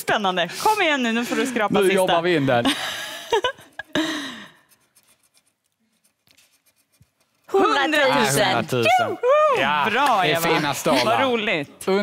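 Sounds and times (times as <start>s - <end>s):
coin scratching lottery ticket: 4.6s - 8.0s.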